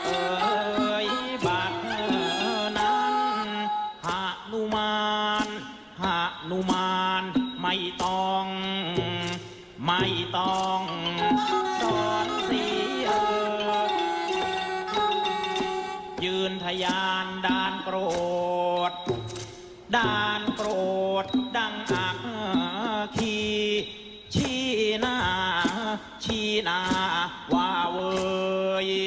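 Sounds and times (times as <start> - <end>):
music: 0.0 - 29.0
person singing chant-like notes: 0.0 - 29.0
singer breaths: 9.4 - 9.8.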